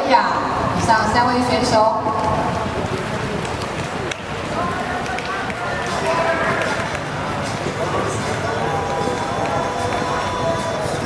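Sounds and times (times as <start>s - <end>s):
swimming hall din: 0.0s - 11.0s.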